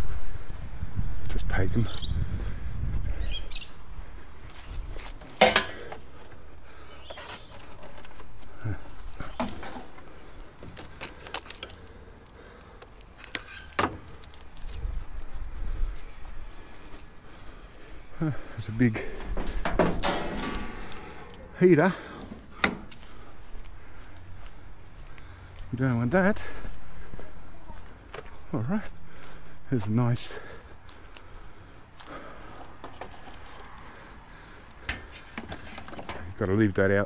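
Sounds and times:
clicks and knocks of handled junk: 5.1 - 6.1, 7.1 - 14.8, 19.2 - 21.4, 34.8 - 36.4.

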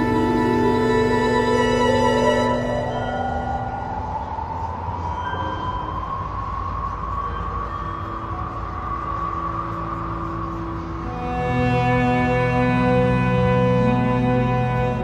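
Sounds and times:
train passing with rising whine: 0.0 - 13.5.

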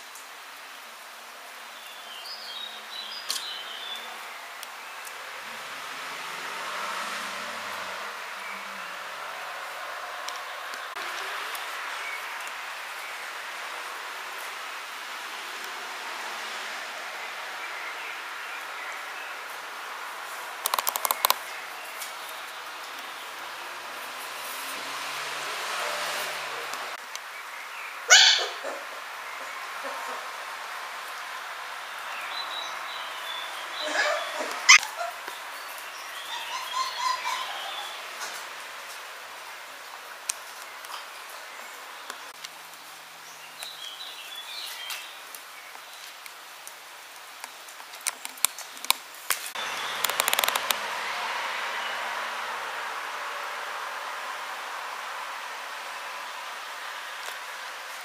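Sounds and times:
claws clicking and tapping: 20.6 - 21.5, 47.4 - 50.8
puppy yipping: 28.1 - 28.8, 33.8 - 35.3, 36.2 - 38.0.

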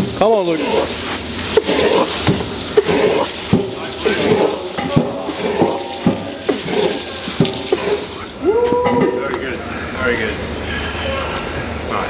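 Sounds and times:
men shouting and grunting: 4.0 - 9.3
long drawn-out yell: 8.4 - 9.2.

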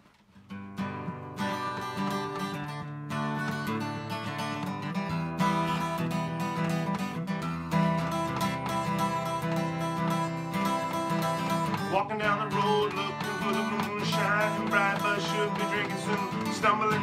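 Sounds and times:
acoustic guitar strumming: 0.2 - 17.0.

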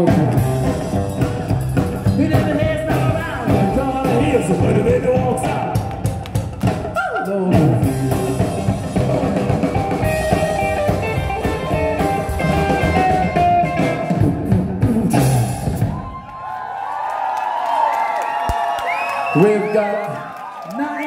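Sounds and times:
rockabilly band playing: 0.0 - 16.2
audience cheering and whooping: 15.7 - 21.0.

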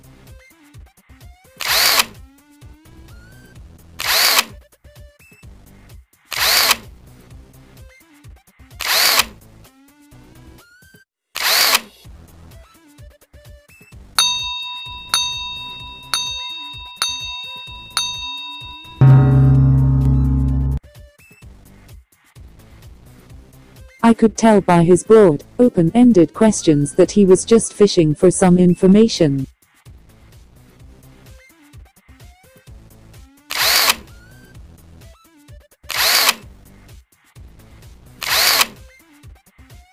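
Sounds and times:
bright bell-like ding: 14.2 - 20.8.

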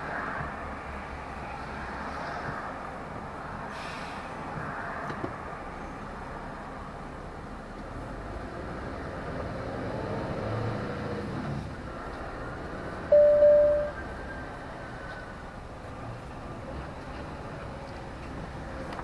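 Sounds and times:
lorry engine and road noise: 0.0 - 19.0
loud single-pitched beep: 13.1 - 14.0.

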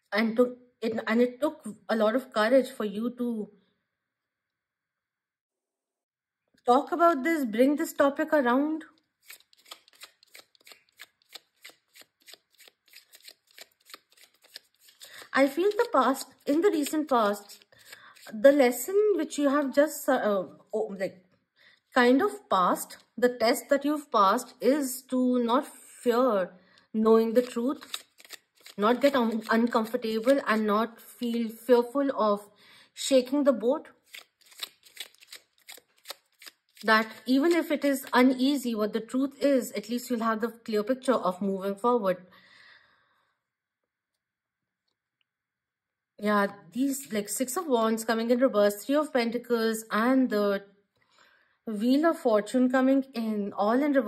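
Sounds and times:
cards being shuffled: 9.2 - 18.5, 27.3 - 30.7, 34.0 - 38.4.

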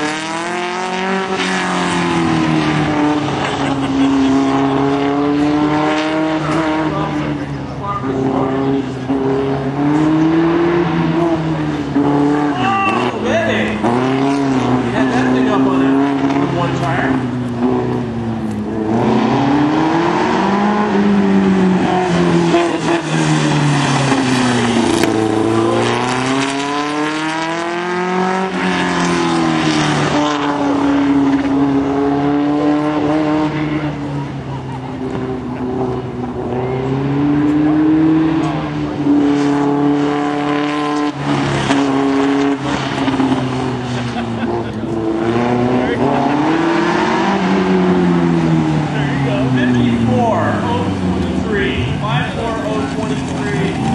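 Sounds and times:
dune buggy engine revving: 0.0 - 53.9.

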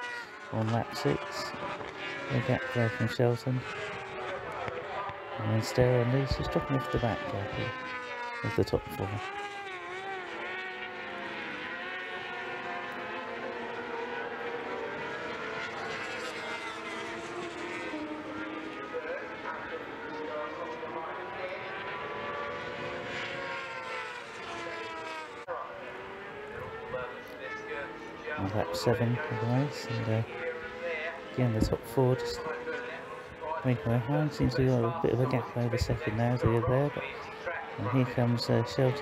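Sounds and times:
racing motorcycles passing: 0.0 - 39.0.

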